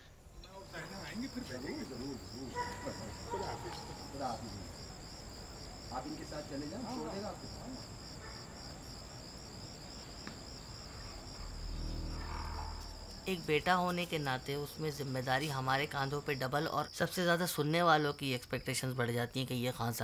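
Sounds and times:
crickets trilling: 0.0 - 20.0
low hum: 10.9 - 13.9.

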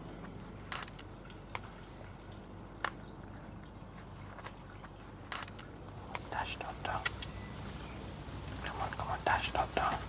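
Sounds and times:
man whispering: 6.1 - 7.2, 8.6 - 10.0.

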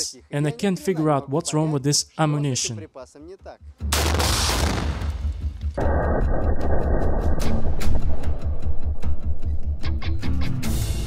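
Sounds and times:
music: 2.0 - 11.0
loud rocket launcher blast: 3.9 - 9.0.

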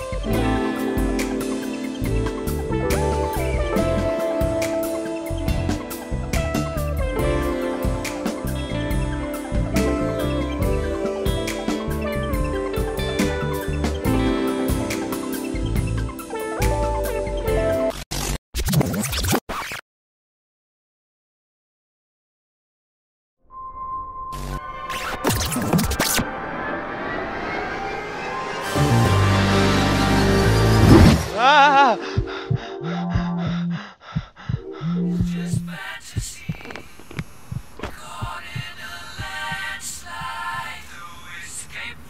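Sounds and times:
record scratches: 17.9 - 19.8, 24.9 - 26.3, 35.4 - 41.1
low heartbeat-like thumps: 32.0 - 40.7.

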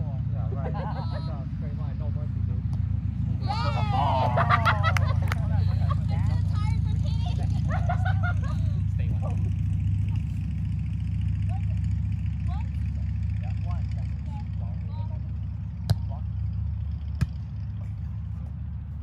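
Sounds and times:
volleyball hand slaps: 15.9 - 16.1, 17.2 - 17.4.

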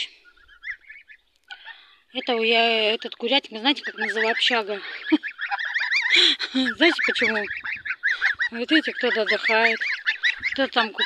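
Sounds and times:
goslings peeping: 0.0 - 11.0.

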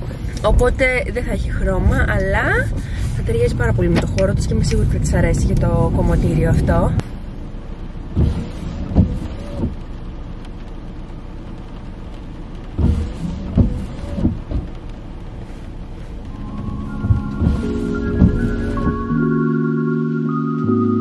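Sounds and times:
rain on a car: 0.0 - 19.2
soft background music: 16.3 - 21.0
short knocks: 17.0 - 19.1.

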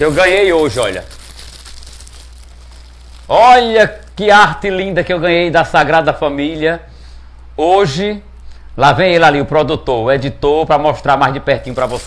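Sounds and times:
cellophane crinkling: 0.0 - 4.7, 11.5 - 12.0
low electrical hum: 0.0 - 12.0.

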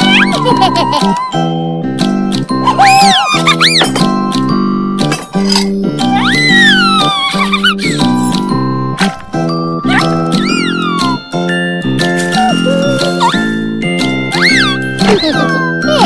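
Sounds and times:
bouncy cartoon music: 0.0 - 16.0
high squeaky sliding sounds: 6.0 - 8.4.

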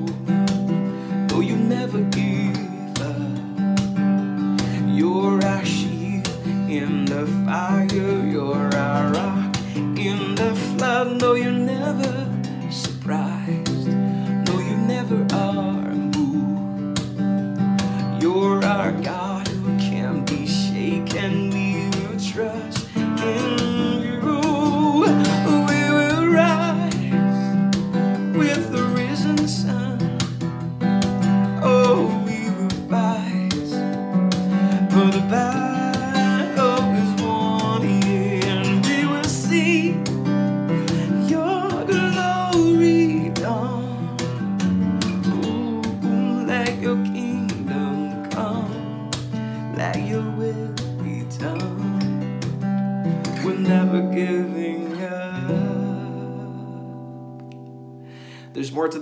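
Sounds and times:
man singing: 0.0 - 57.3, 58.2 - 59.0
acoustic guitar strumming: 0.0 - 59.0.

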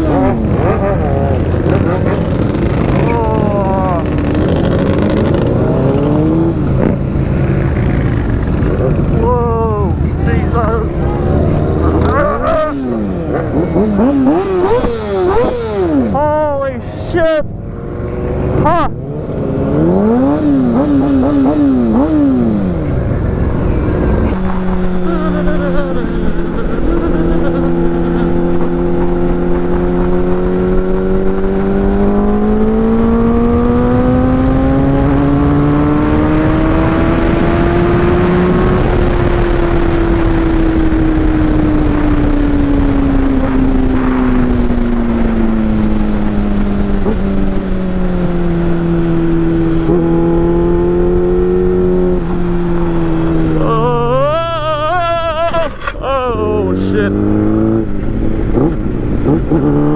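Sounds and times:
motorcycle engine revving: 0.0 - 16.6, 17.3 - 59.9.

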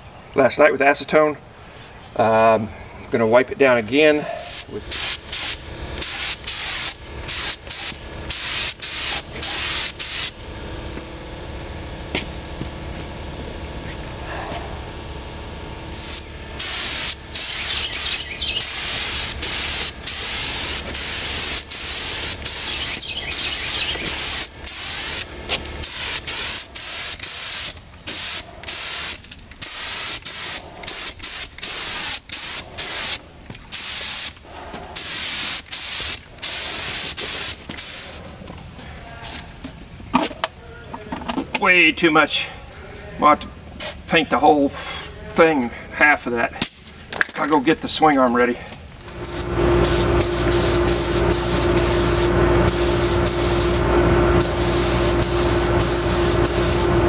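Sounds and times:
spray gun hissing: 4.4 - 10.4, 15.8 - 38.3, 49.0 - 57.0.

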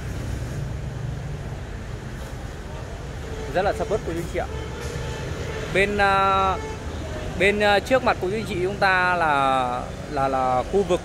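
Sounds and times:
street background rumble: 0.0 - 11.0.

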